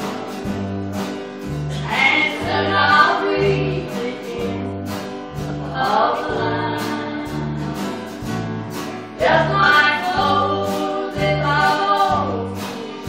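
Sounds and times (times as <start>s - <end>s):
stepping bass line: 0.0s - 12.8s
gospel singing: 1.7s - 8.1s, 9.2s - 13.0s.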